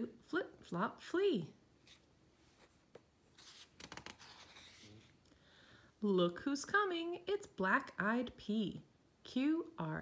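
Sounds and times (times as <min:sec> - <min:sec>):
paper page turning: 0:03.3 - 0:05.1.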